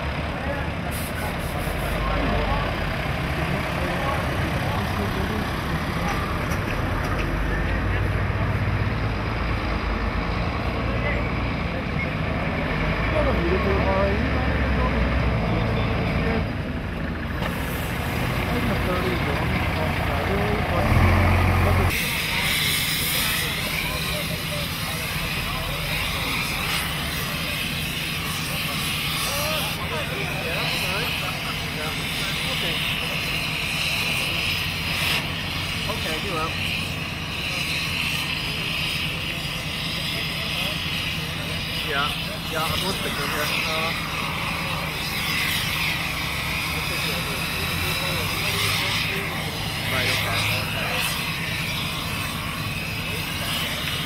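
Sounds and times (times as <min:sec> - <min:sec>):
cutting torch hissing: 0:00.0 - 0:54.0
large engine idling: 0:00.0 - 0:54.0.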